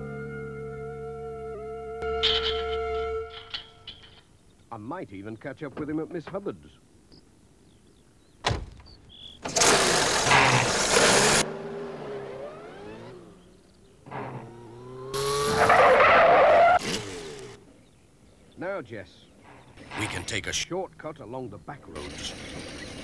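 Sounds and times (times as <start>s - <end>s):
cartoon van engine: 0.0s - 4.2s, 9.4s - 17.7s, 21.8s - 23.0s
road noise: 0.0s - 23.0s.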